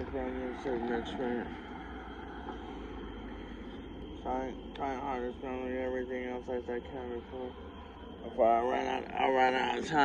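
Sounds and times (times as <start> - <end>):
faint high-pitched tone: 0.0 - 10.0
outdoor background rumble: 0.0 - 10.0.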